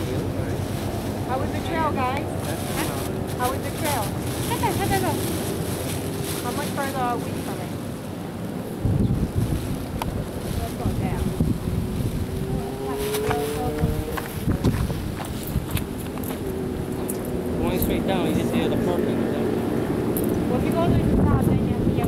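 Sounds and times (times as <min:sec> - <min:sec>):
engine hum: 0:00.0 - 0:22.0.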